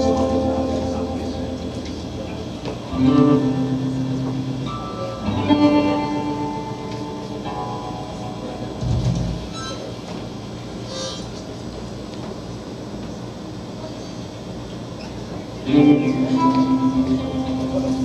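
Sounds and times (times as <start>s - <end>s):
guitar chords ringing: 0.0s - 10.0s, 15.6s - 18.0s.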